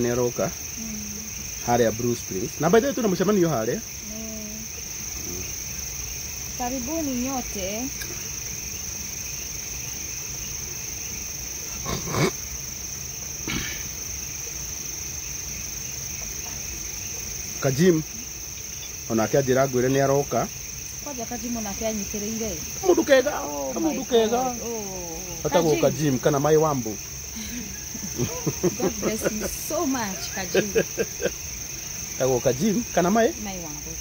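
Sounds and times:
voices: 0.0 - 5.6, 6.5 - 8.3, 16.2 - 34.0
crickets chirring: 0.0 - 34.0.

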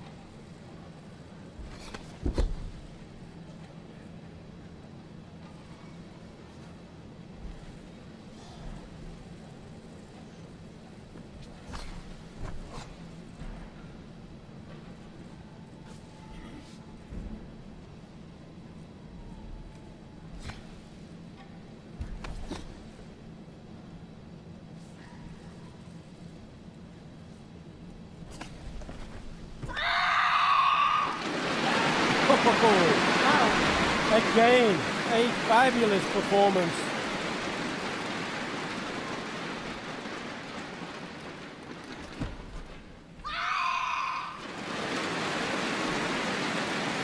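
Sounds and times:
low arena hum: 0.0 - 47.0
crowd applause: 31.0 - 42.6, 44.2 - 47.0
person shouting: 43.3 - 44.4.

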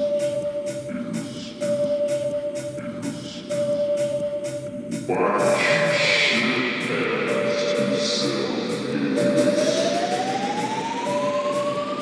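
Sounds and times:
rising siren-like synth tone: 9.1 - 12.0.

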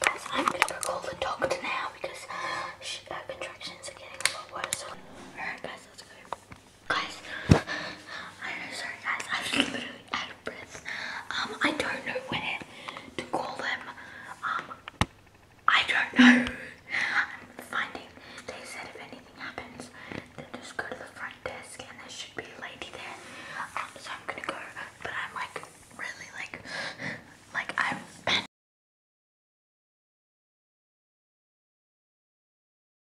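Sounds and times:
people whispering: 0.0 - 14.8.

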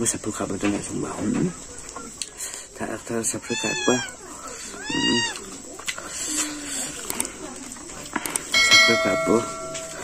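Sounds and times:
cat meowing: 3.4 - 5.4.

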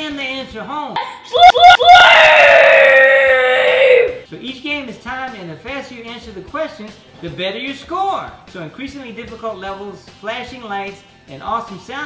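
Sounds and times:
child yelling: 1.3 - 4.2.

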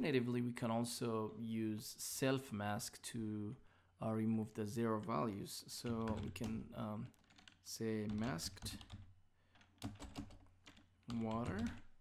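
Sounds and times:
computer keyboard typing: 5.8 - 12.0.

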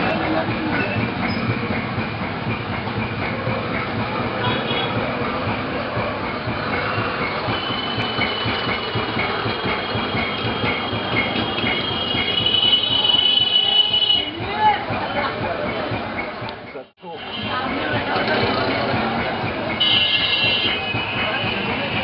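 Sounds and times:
loud background din: 0.0 - 22.0
voices: 0.0 - 22.0.

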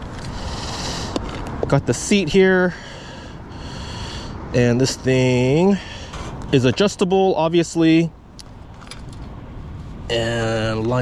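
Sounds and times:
low steady background noise: 0.0 - 11.0.

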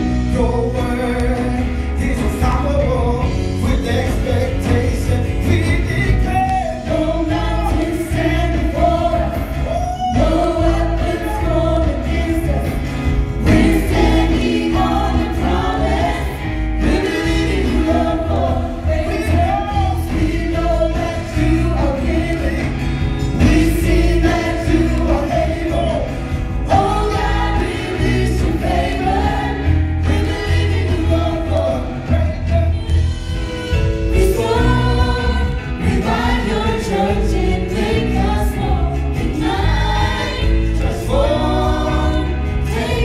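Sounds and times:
man singing into microphone: 0.0 - 12.8
backing singers: 0.0 - 43.0
instruments with steady bass: 0.0 - 43.0.

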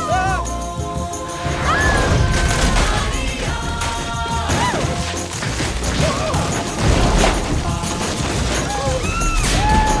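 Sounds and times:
animated film music: 0.0 - 10.0
crashing and thudding effects: 1.9 - 10.0.

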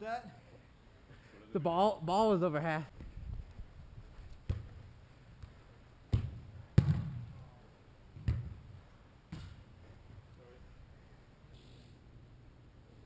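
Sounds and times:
ball kicks with echo: 4.4 - 4.8, 5.4 - 7.4, 8.2 - 8.7.

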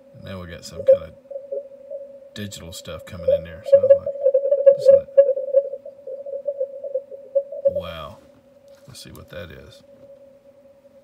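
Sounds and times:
warbling radio signal tone: 0.6 - 8.1.

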